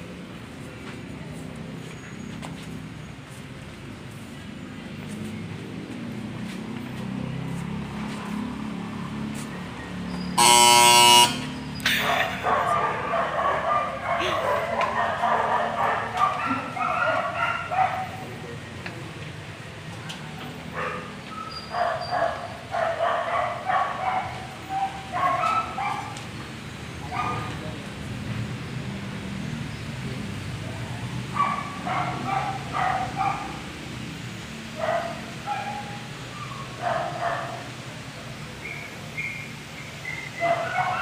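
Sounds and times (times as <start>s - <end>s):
loud steady high tone: 10.4s - 12.4s
people's voices: 11.8s - 20.7s
dog barking: 11.9s - 18.4s, 20.7s - 26.2s, 27.1s - 27.5s, 30.7s - 33.6s, 34.8s - 37.8s, 40.3s - 41.0s.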